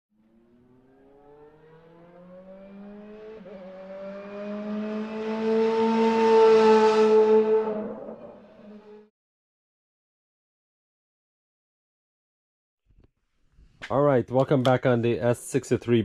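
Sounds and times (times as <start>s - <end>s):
car engine accelerating: 0.2s - 9.1s.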